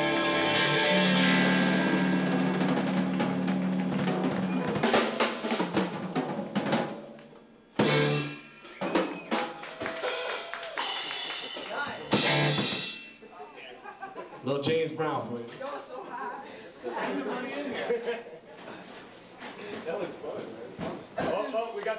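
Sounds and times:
drum kit hits and fills: 0.0s - 7.2s, 7.8s - 13.2s
live rock band playing: 0.0s - 7.2s, 7.8s - 13.3s.

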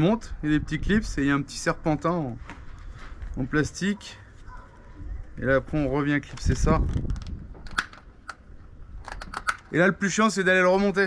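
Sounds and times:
plastic clips snapping together: 6.3s - 8.4s.

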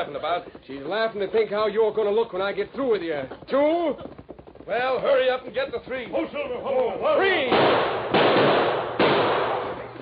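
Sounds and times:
revolver gunshots: 7.4s - 10.0s.

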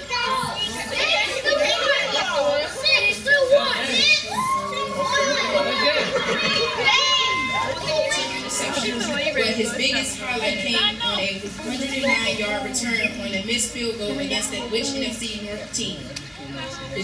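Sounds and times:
children shouting over one another: 0.0s - 9.0s.

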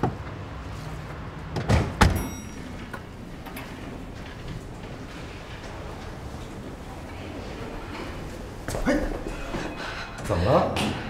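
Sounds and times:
elevator doors sliding open: 0.0s - 11.0s
elevator arrival ding: 2.0s - 7.4s.

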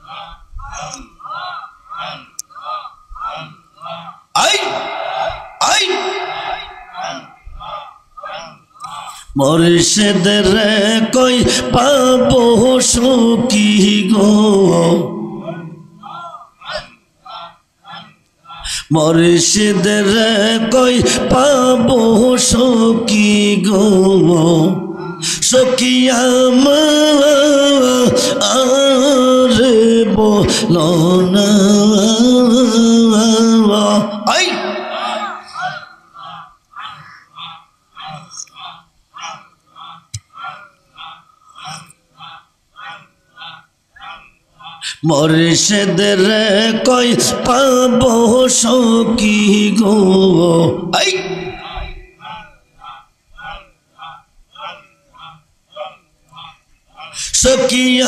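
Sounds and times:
man chanting into a microphone: 0.0s - 58.0s
devotional song singing: 8.8s - 16.2s, 18.6s - 36.4s, 44.8s - 53.6s, 57.1s - 58.0s.

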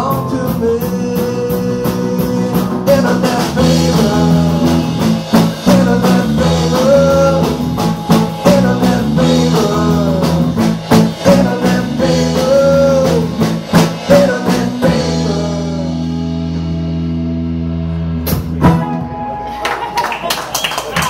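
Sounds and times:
live rock band playing: 0.0s - 21.0s
sliding melody line: 1.2s - 16.8s.

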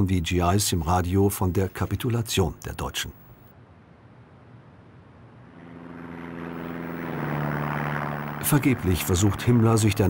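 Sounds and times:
propeller aircraft engine hum: 4.8s - 10.0s.

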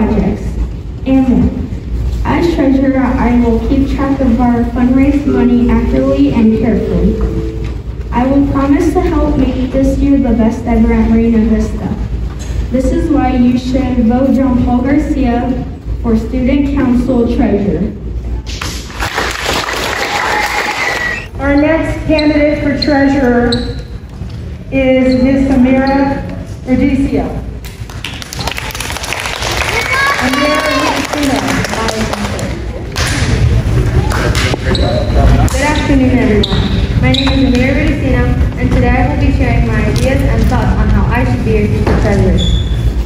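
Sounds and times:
audience applauding: 18.9s - 21.3s, 27.8s - 32.6s
child speaking into microphone: 29.6s - 32.6s.

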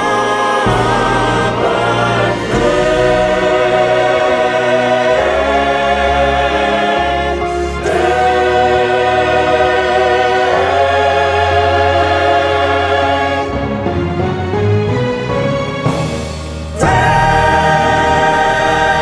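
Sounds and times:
choir singing gospel: 0.0s - 14.3s, 16.5s - 19.0s.

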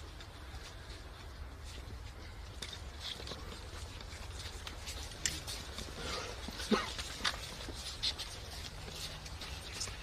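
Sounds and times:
footsteps on stone paving: 0.0s - 10.0s.

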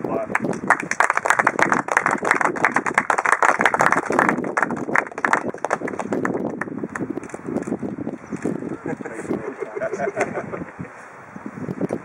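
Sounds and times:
small group clapping: 0.3s - 7.7s.

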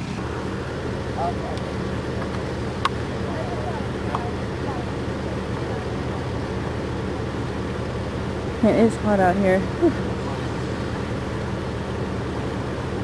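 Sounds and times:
low engine hum: 0.0s - 13.0s
faint voices: 0.7s - 11.2s.

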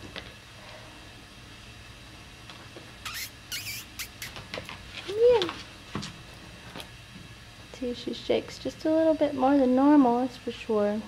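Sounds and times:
puppy squeaks: 3.0s - 4.4s.

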